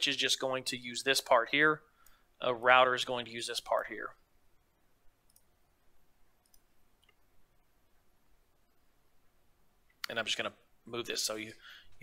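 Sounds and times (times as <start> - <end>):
computer mouse clicks: 5.2 - 5.6, 6.4 - 7.3.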